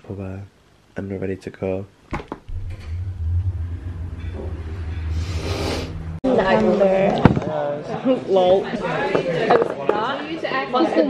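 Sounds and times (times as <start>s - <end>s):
lift hum and rumble: 2.5s - 6.7s.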